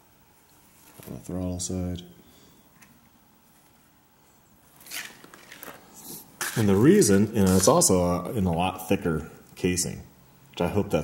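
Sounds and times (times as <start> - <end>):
cable rustling scrape: 4.8 - 7.9.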